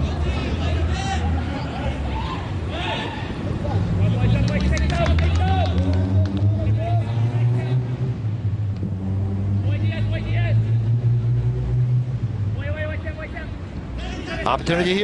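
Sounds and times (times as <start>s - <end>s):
players shouting: 0.0s - 7.9s, 12.6s - 15.0s
steady low hum: 6.3s - 13.9s.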